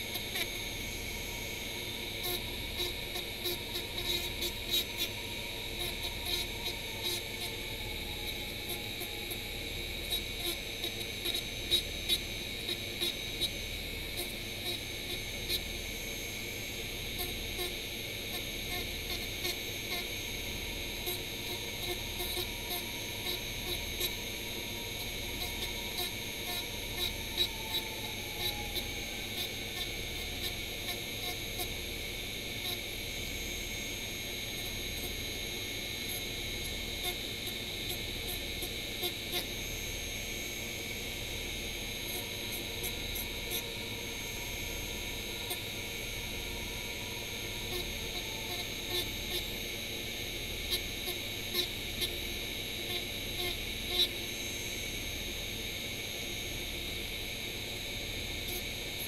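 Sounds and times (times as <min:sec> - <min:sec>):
rotary tool whining: 0:00.0 - 0:55.4.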